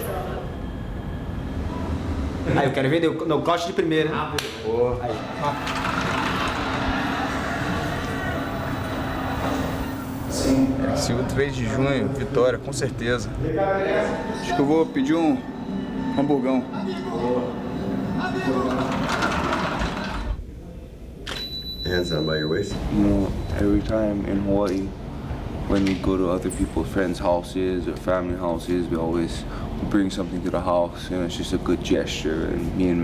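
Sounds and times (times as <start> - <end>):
high-pitched flash recharge whine: 5.2 - 10.7.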